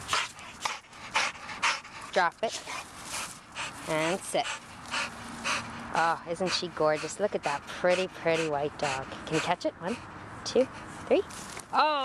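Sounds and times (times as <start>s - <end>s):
dog panting: 0.0s - 11.3s.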